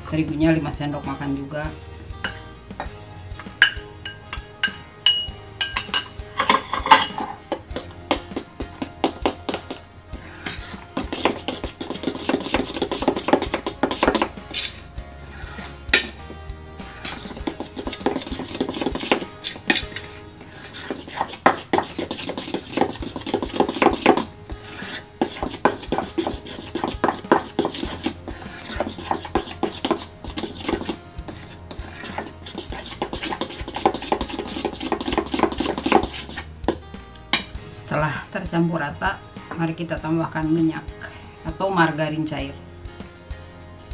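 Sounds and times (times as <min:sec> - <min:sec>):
spoon clinking against metal bowl: 0:03.6 - 0:07.6
metal spoon scraping batter in bowl: 0:03.6 - 0:36.8.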